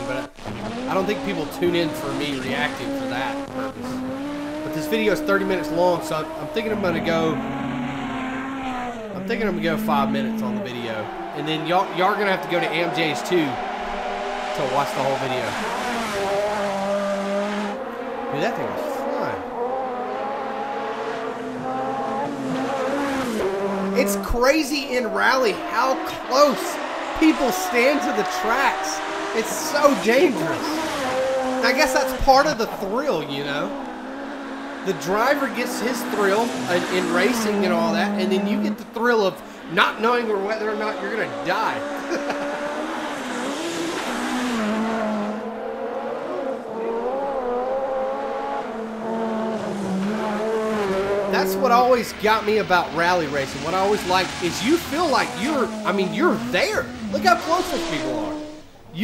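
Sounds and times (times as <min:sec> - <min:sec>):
rally car engine at high revs: 0:00.0 - 0:59.0.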